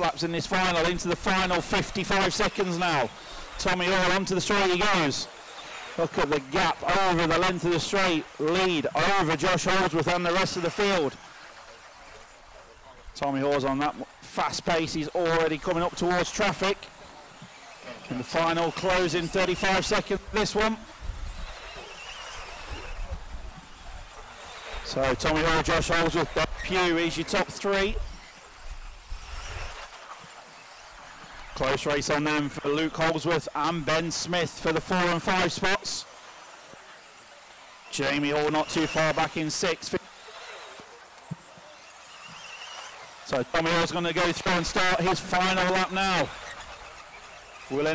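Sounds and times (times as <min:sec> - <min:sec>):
faint wavering motor whine: 0:00.0 - 0:47.9
steady outdoor hiss: 0:00.0 - 0:47.9.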